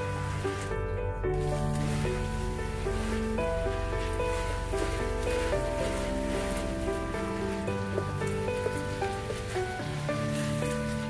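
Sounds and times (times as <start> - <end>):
background music: 0.0 - 11.0
hose water spraying: 0.0 - 11.0.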